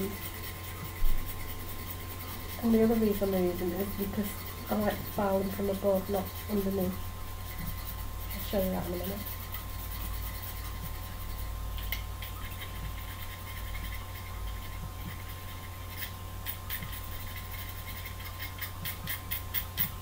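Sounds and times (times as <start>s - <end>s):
knife scraping pencil lead: 0.0s - 20.0s.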